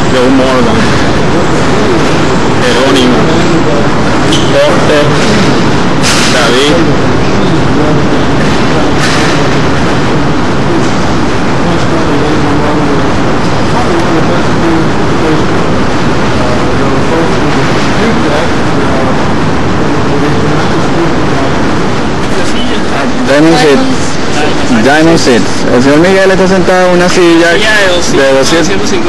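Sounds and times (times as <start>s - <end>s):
faint voices talking: 0.0s - 29.0s
loud steady background noise: 0.0s - 29.0s.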